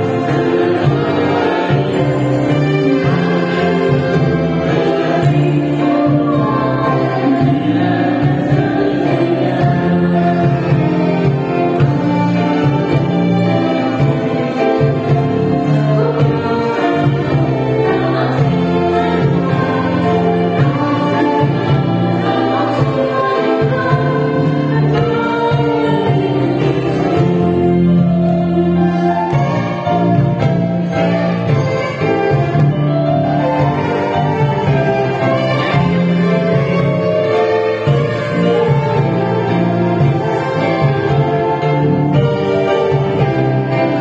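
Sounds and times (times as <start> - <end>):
woman and man singing: 0.0 - 11.4, 13.8 - 29.6
live band playing: 0.0 - 44.0.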